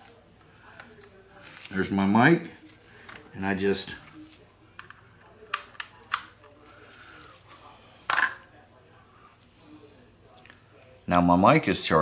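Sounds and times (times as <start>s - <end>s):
plastic clicks and handling: 3.0s - 3.4s, 4.0s - 6.8s.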